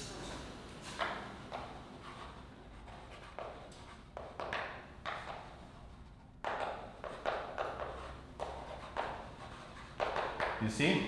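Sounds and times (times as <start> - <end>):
chalk writing on blackboard: 0.9 - 10.7.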